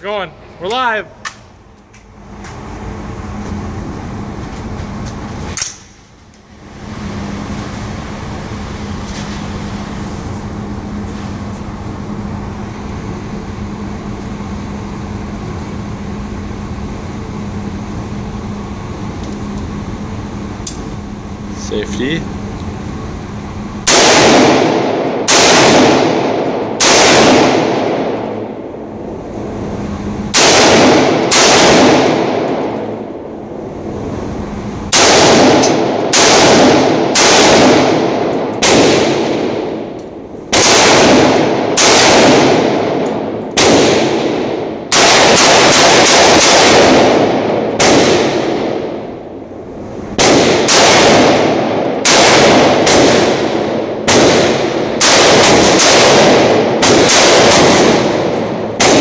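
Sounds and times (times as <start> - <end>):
rifle shots echoing indoors: 23.8 - 29.2, 30.3 - 33.7, 34.9 - 59.0.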